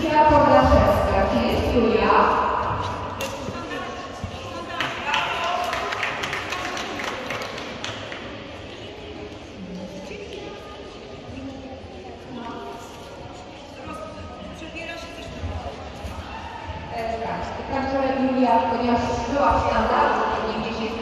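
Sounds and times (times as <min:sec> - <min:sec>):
hand-clapping echoing in gymnasium: 0:02.5 - 0:11.7.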